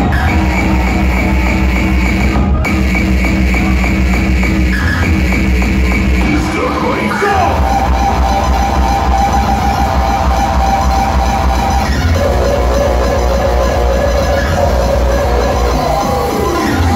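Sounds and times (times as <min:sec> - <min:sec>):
held synth lead: 0:00.0 - 0:16.9.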